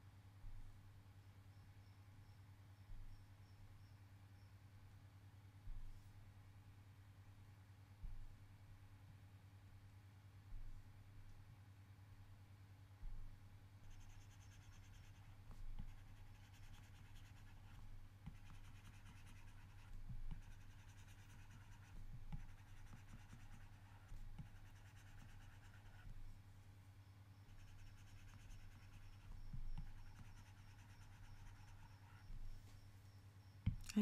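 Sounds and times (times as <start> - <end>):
low steady hum: 0.0 - 34.0
stylus scratching on glass screen: 13.8 - 26.2, 27.5 - 32.6.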